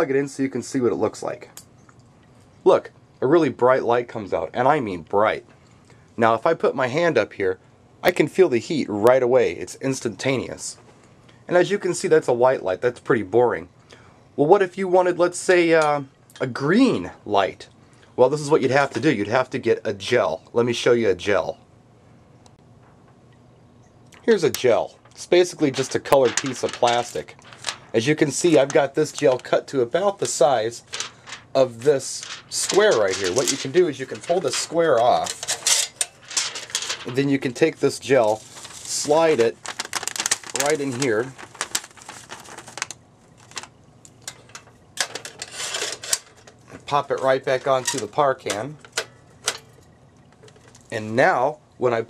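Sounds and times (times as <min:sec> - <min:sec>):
plastic gel crinkling: 0:24.2 - 0:44.8, 0:50.2 - 0:51.0.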